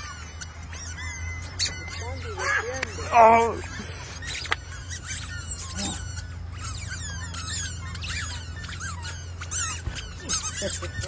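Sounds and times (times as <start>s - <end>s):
rubber chicken toys squeaking: 0.0s - 11.0s
steady low hum: 0.0s - 11.0s.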